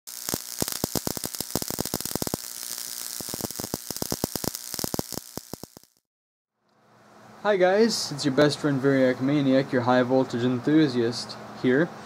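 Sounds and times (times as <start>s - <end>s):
electrical buzzing hiss: 0.0s - 6.0s
sharp cracks of sparks: 0.0s - 6.1s.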